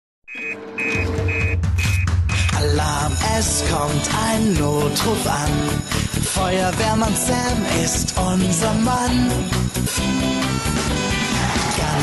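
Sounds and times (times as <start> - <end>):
electronic alarm beeping: 0.3 - 2.5
bass beat of music: 0.4 - 12.0.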